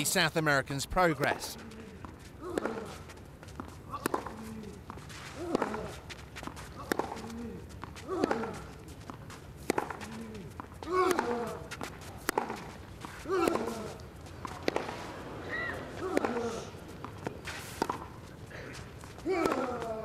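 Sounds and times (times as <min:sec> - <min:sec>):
rackets striking tennis ball: 0:02.1 - 0:03.0, 0:05.0 - 0:20.0.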